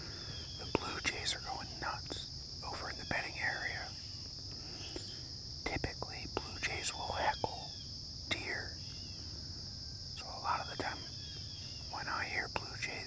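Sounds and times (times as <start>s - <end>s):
high insect drone: 0.0s - 13.0s.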